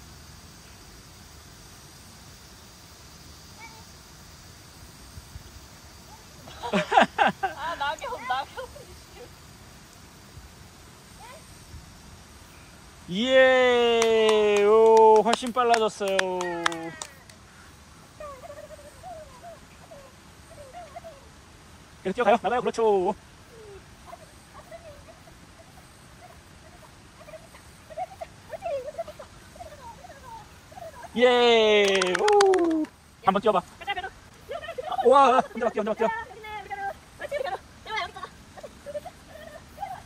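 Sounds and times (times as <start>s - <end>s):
person cheering call: 13.1s - 15.2s, 31.2s - 32.9s.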